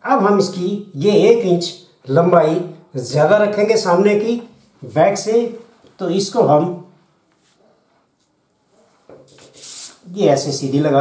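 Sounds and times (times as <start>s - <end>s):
wooden ruler rubbing on cloth: 7.3s - 10.1s.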